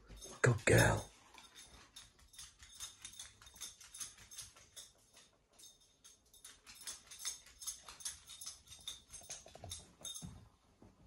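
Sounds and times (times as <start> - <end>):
dog claws clicking on wooden floor: 1.2 - 10.4.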